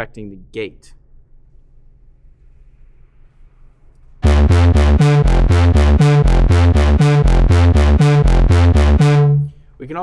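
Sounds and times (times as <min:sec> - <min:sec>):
arpeggiated bass synth: 0:04.2 - 0:09.6.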